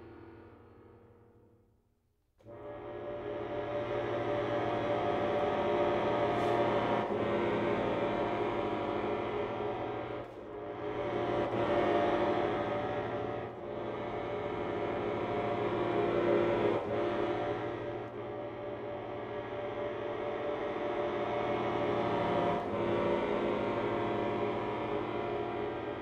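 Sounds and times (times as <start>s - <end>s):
cello: 2.5s - 26.0s
violin: 2.5s - 26.0s
button accordion: 2.6s - 26.0s.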